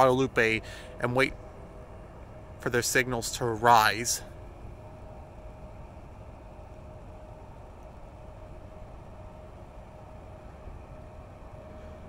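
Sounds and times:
low outdoor rumble: 0.0s - 12.0s
thin steady hum: 0.0s - 12.0s.

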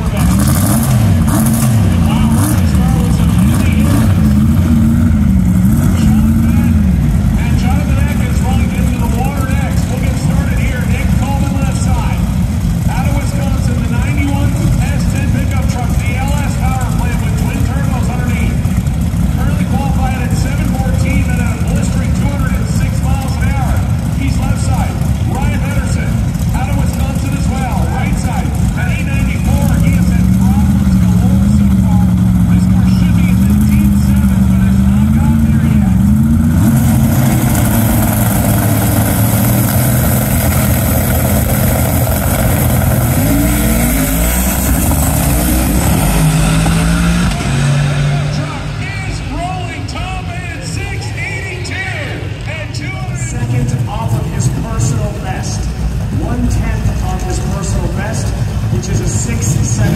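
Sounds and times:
people talking: 0.0s - 0.8s, 1.9s - 37.8s, 42.9s - 45.4s, 46.0s - 59.9s
drag car engines revving: 0.0s - 59.9s.

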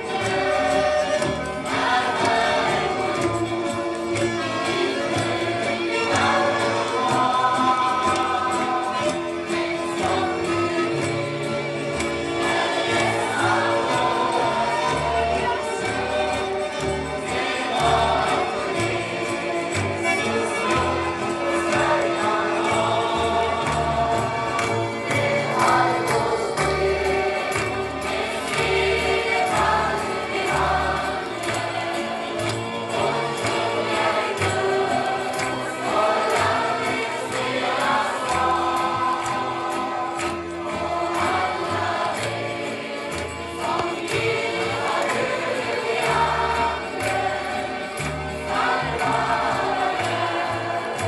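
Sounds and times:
choir singing: 0.0s - 51.0s
instrumental accompaniment: 0.0s - 51.0s.

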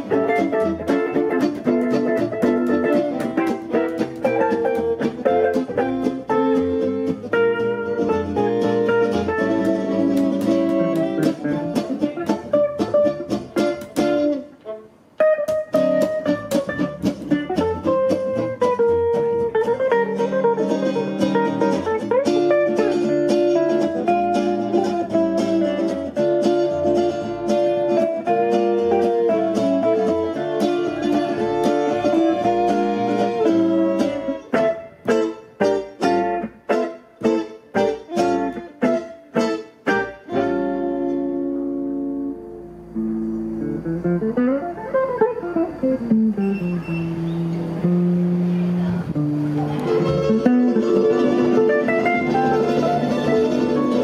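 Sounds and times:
swing jazz quartet playing: 0.0s - 54.0s.

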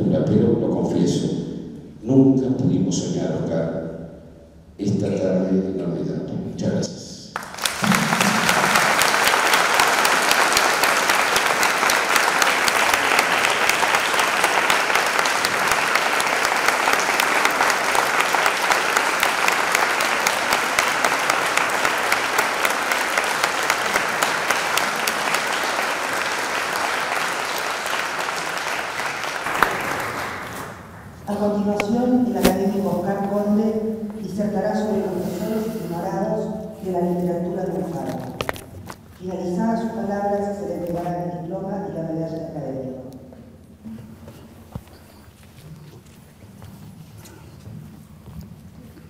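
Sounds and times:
audience applauding: 7.4s - 31.2s.

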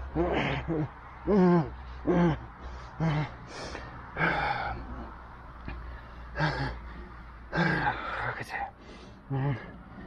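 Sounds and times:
man groaning in pain: 6.4s - 6.8s, 7.5s - 8.4s.

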